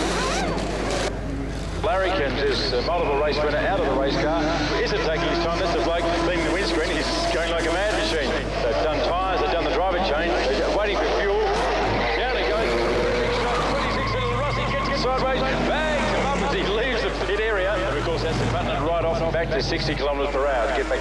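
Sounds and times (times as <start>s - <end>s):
race car engines: 0.0s - 21.0s
man talking: 1.8s - 21.0s.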